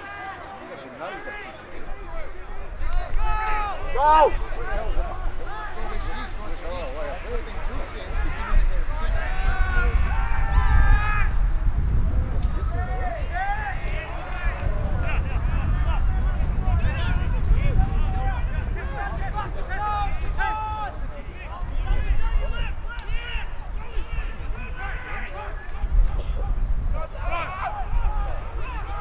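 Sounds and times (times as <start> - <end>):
people shouting at a distance: 0.0 - 7.2, 8.0 - 11.5, 12.5 - 29.0
wind rumble on microphone: 2.4 - 29.0.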